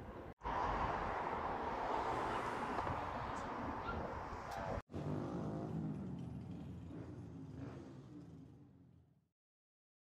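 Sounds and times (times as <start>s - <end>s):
small motorcycles riding past: 4.9s - 9.2s.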